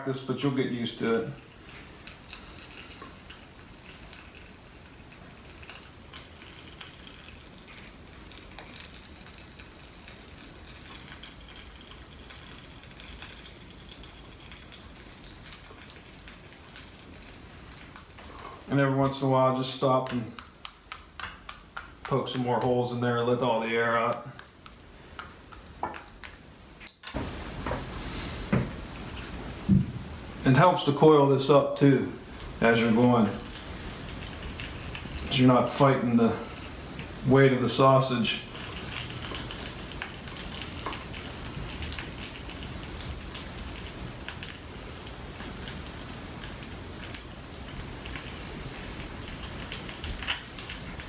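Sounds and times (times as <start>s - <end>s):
sausage stuffing crackle: 0.0s - 51.0s
steady hiss: 0.0s - 51.0s.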